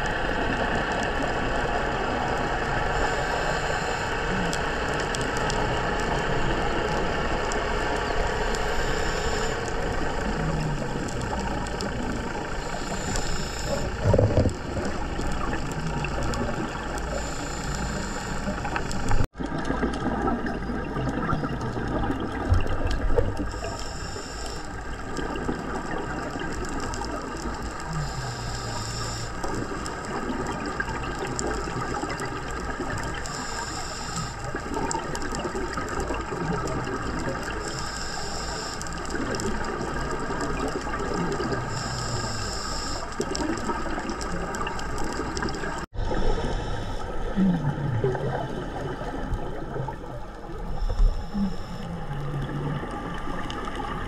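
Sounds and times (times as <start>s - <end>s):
exhaled bubbles underwater: 0.0s - 54.0s
diver breathing through regulator: 2.9s - 4.4s, 8.5s - 10.1s, 12.4s - 14.7s, 17.0s - 19.3s, 23.5s - 25.0s, 27.8s - 30.2s, 33.2s - 34.6s, 37.5s - 39.2s, 41.4s - 43.4s, 45.9s - 49.2s, 50.7s - 52.5s.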